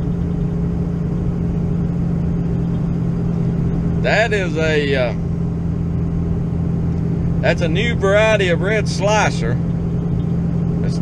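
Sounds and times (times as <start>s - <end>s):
constant low hum: 0.0s - 11.0s
vehicle engine drone from cab: 0.0s - 11.0s.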